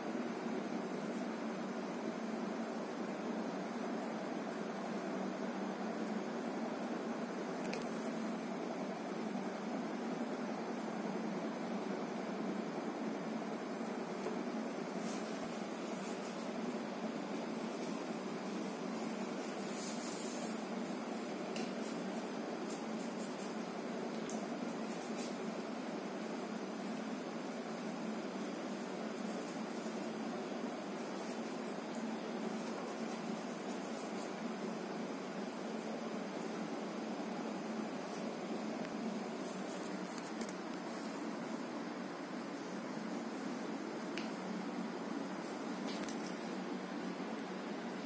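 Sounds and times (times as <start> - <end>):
room noise: 0.0 - 48.0.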